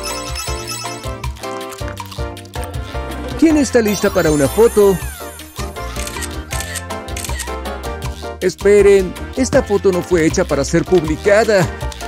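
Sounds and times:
background music with steady beat: 0.0s - 12.0s
camera shutter click: 6.0s - 7.5s.

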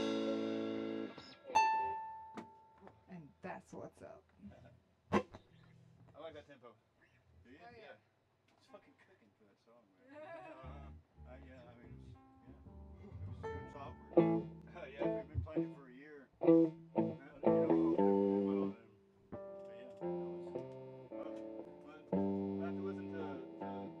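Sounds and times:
electric guitar notes and chords: 0.0s - 2.4s, 13.5s - 15.8s, 16.4s - 24.0s.

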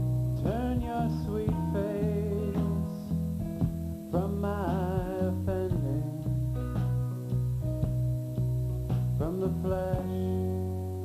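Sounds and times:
low bass notes: 0.0s - 11.0s
plucked acoustic guitar: 0.0s - 11.0s.

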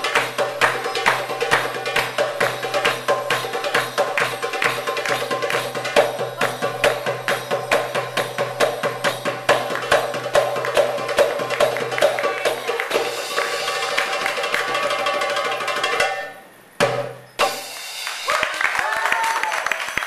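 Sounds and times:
goblet drum solo: 0.0s - 18.4s.

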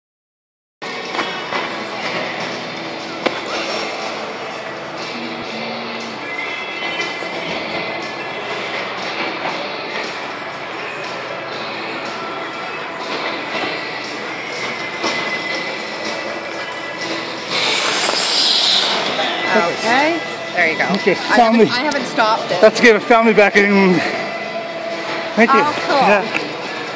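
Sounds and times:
music over speakers: 0.9s - 26.9s
skate blades scraping on ice: 17.1s - 19.4s.

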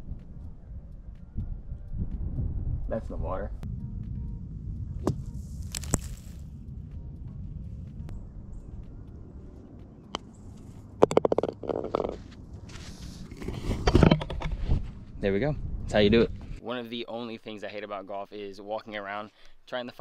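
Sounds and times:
wind rumbling on microphone: 0.0s - 16.6s
golf club striking sand: 5.0s - 6.4s
sand hissing: 5.3s - 6.6s
putter tapping golf ball: 10.1s - 12.2s.

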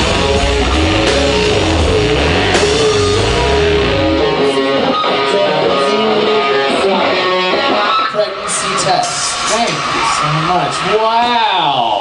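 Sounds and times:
drums and bass: 0.0s - 7.8s
electric guitar ringing out: 0.0s - 11.0s.

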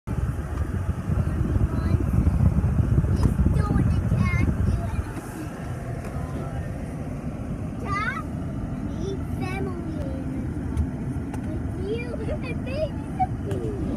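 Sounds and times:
car road and engine rumble: 0.0s - 13.9s.

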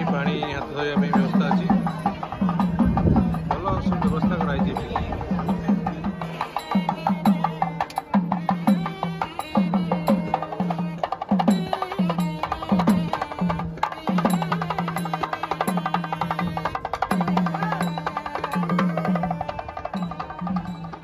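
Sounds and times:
drum beating deep strokes: 0.0s - 21.0s
reedy wind instrument melody: 4.8s - 21.0s.

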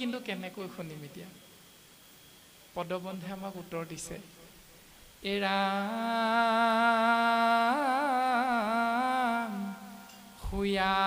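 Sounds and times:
man chanting: 5.2s - 11.0s.

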